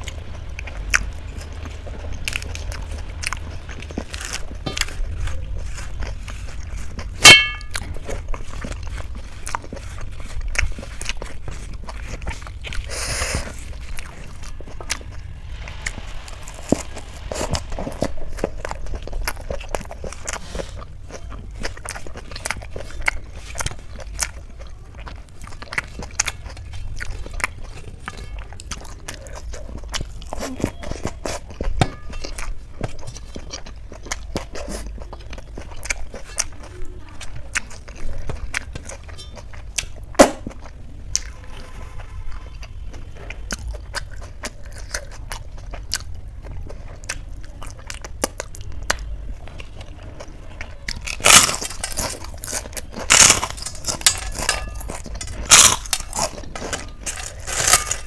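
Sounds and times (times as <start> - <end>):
steady low hum: 0.0 - 24.6
chewing lettuce: 0.0 - 58.0
sharp ringing clink: 7.3 - 7.8.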